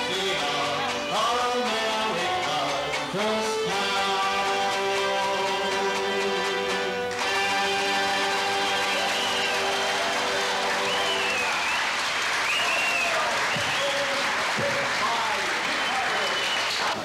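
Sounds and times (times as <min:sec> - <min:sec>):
music playing: 0:00.0 - 0:17.0
voices calling out: 0:00.0 - 0:17.0
people applauding: 0:04.0 - 0:17.0.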